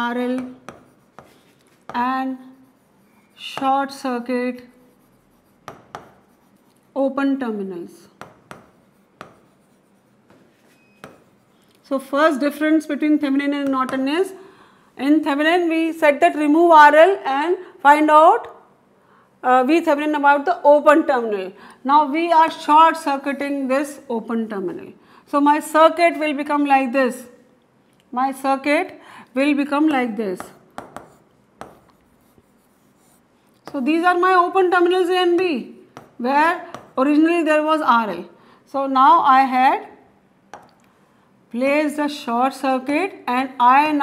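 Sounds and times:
pen writing on a board: 0:00.2 - 0:03.8, 0:04.6 - 0:06.9, 0:08.2 - 0:11.6, 0:30.4 - 0:33.9, 0:35.4 - 0:37.0.

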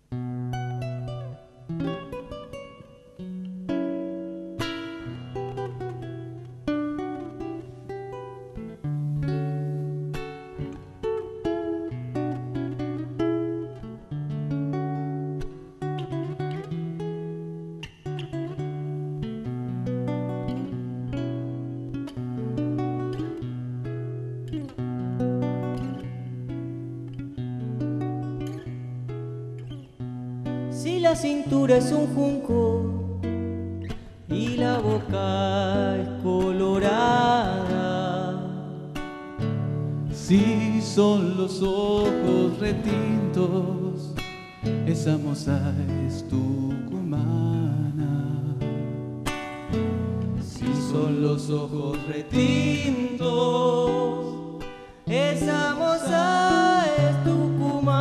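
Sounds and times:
acoustic guitar plucked melody: 0:00.0 - 0:58.0.

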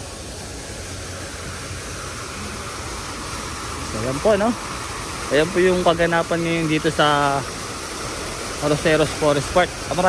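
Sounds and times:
fountain water splashing: 0:00.0 - 0:10.0.

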